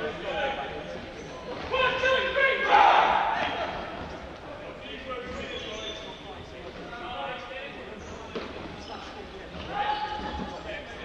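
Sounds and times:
voices echoing in a hall: 0:00.0 - 0:11.0.

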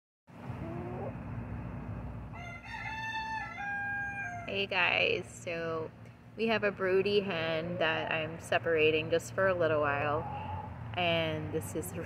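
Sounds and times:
rooster crowing: 0:02.3 - 0:04.5.

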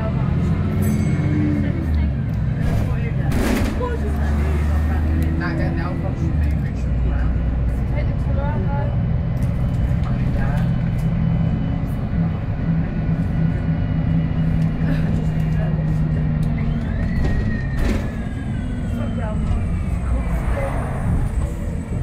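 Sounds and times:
bus engine droning: 0:00.0 - 0:22.0
faint passenger voices: 0:00.0 - 0:22.0.

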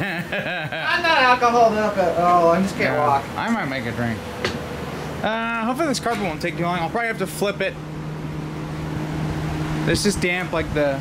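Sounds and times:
electric fan running: 0:00.0 - 0:11.0.

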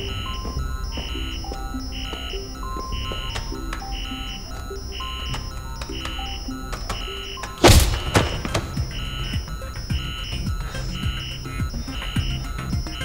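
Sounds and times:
high beeping pulse: 0:00.0 - 0:13.0
tense electronic score: 0:00.0 - 0:13.0
loud heavy thud: 0:07.6 - 0:10.0.

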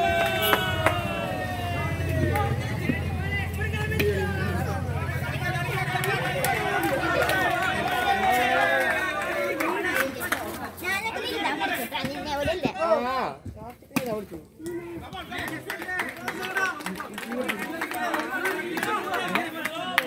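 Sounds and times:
players calling and chattering: 0:00.0 - 0:20.0.

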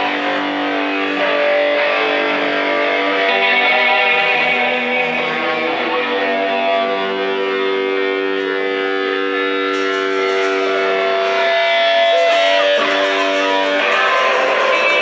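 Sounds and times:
distorted electric guitar chord: 0:00.0 - 0:15.0
drum cymbals beat: 0:09.7 - 0:15.0.

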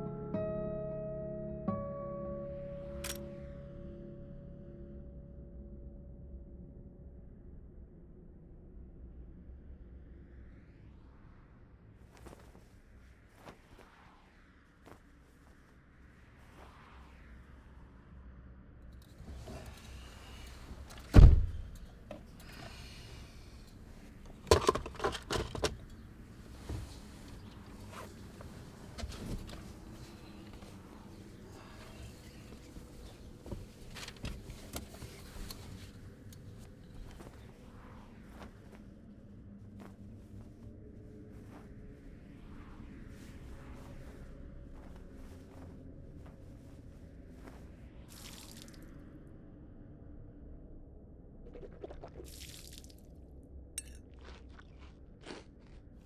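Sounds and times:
low steady hum: 0:00.0 - 0:11.4, 0:18.2 - 0:56.0.

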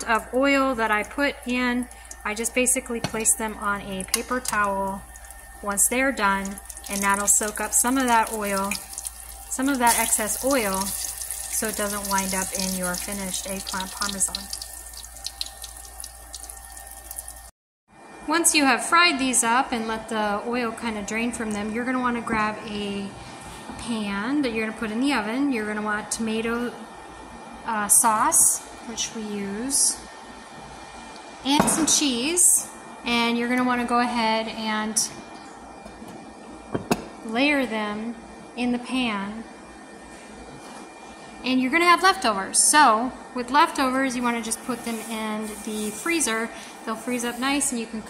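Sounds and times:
eggplant frying in oil: 0:00.0 - 0:17.5, 0:44.2 - 0:47.6.

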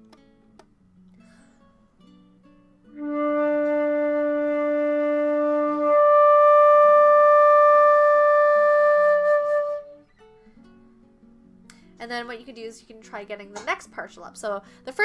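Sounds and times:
flute holding a note: 0:02.9 - 0:10.0.

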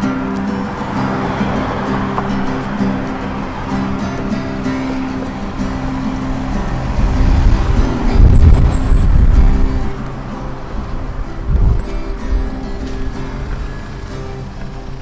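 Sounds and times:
acoustic guitar strumming: 0:00.0 - 0:15.0
vehicle passing with low rumble: 0:05.4 - 0:11.8.

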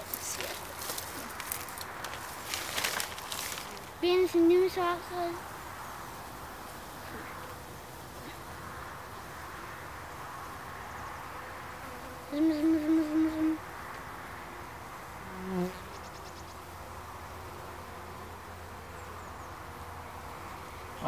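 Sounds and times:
honeybee colony humming: 0:00.0 - 0:21.0.

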